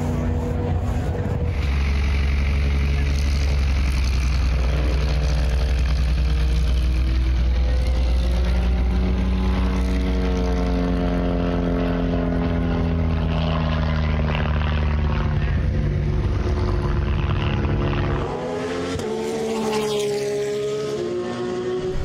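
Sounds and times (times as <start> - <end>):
propeller aircraft engine droning: 0.0 - 19.4.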